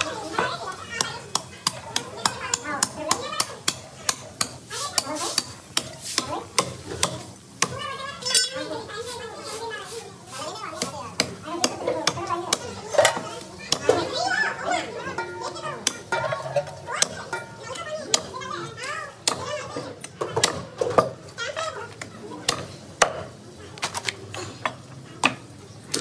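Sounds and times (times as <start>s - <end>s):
children chattering: 0.0s - 26.0s.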